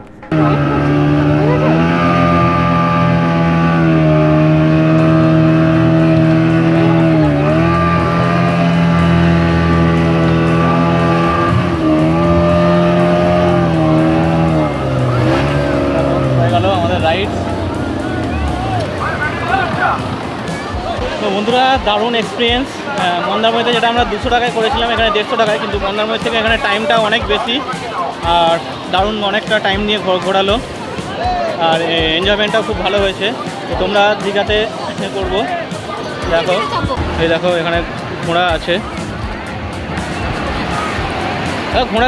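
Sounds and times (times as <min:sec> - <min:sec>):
outboard motor running: 0:00.0 - 0:42.0.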